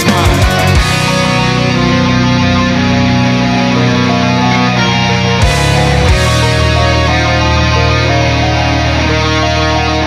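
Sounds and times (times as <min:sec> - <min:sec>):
steady low bass: 0:00.0 - 0:09.4
distorted electric guitar chords: 0:00.0 - 0:10.0.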